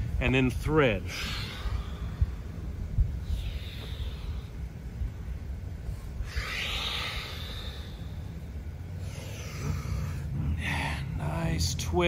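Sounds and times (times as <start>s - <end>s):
low background rumble: 0.0s - 12.0s
person breathing out: 1.1s - 4.7s, 6.0s - 8.4s.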